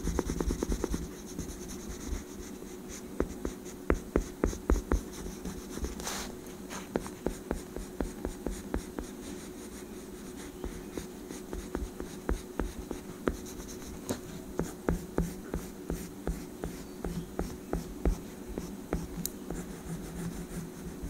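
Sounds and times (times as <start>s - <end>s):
oil pastel rubbing on paper: 0.0s - 21.0s.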